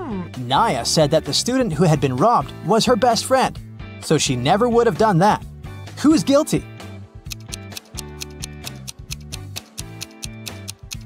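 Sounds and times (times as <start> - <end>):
clock-like ticking music: 7.2 - 11.0.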